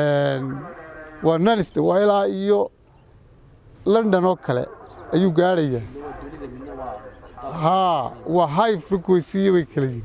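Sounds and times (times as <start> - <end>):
man speaking: 3.8 - 10.0.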